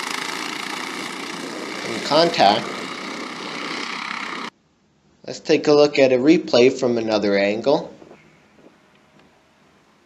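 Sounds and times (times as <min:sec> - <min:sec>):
go-kart engines running: 0:00.0 - 0:04.5.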